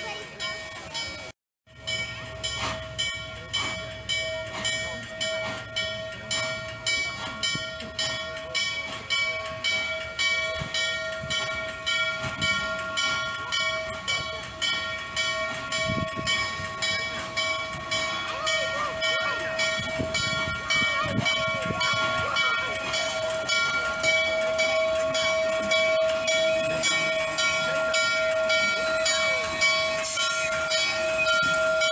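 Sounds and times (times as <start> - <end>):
low rumble of locomotive: 0.0 - 31.9
steam locomotive bell ringing: 0.0 - 31.9.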